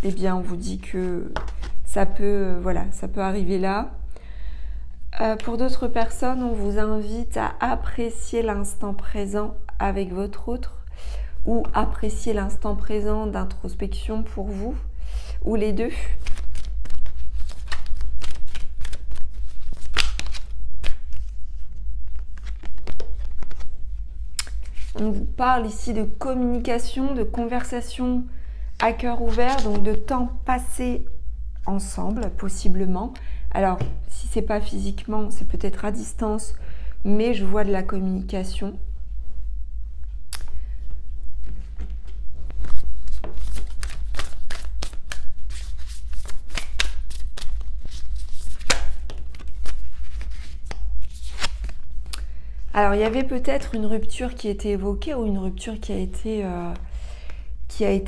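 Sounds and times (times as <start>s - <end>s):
steady low hum: 0.0s - 58.0s
cards being shuffled by hand: 1.4s - 1.9s, 16.2s - 25.3s, 29.1s - 30.1s, 41.4s - 52.2s.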